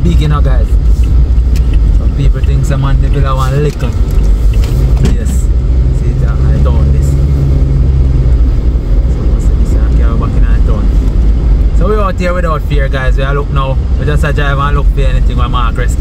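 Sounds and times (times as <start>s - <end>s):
car engine and road drone: 0.0s - 16.0s.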